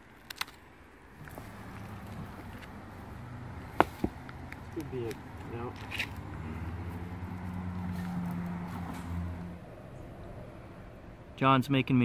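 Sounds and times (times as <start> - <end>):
low engine hum: 1.0 - 11.4.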